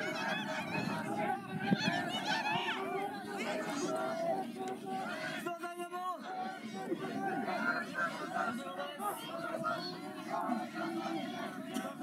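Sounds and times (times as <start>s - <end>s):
spectators shouting encouragement: 0.0s - 5.5s, 6.2s - 12.0s.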